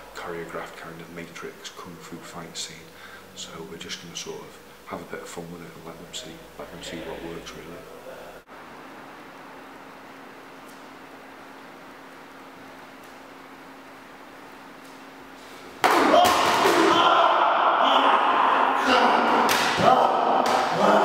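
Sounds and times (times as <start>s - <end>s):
faint steady hum: 0.0s - 21.0s
raised voices: 16.0s - 21.0s.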